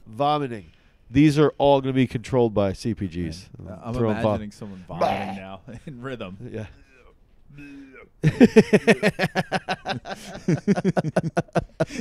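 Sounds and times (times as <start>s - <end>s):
man imitating retching: 4.9s - 5.6s.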